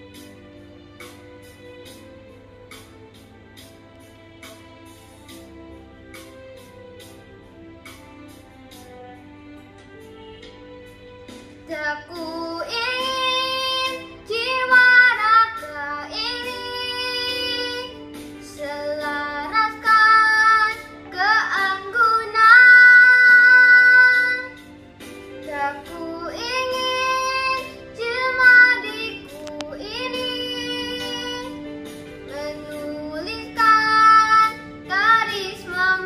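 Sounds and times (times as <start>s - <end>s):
instrumental backing music: 0.0s - 36.0s
girl singing: 11.6s - 24.7s, 25.4s - 36.0s.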